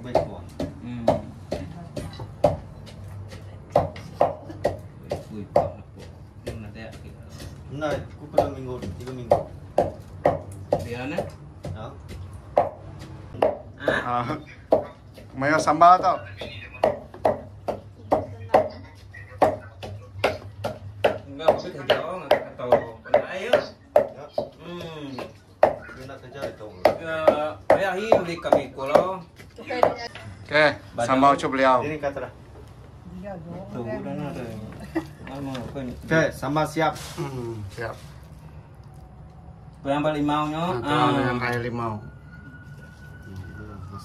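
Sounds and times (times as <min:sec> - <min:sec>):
knife chopping on plastic board: 0:00.0 - 0:14.0, 0:16.4 - 0:18.7, 0:19.4 - 0:29.1
wooden pestle pounding in mortar: 0:00.0 - 0:18.8, 0:19.4 - 0:30.1.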